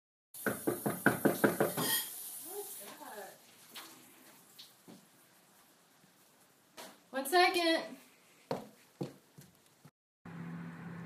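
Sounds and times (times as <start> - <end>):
rapid knocking on hard surface: 0.4 - 1.9.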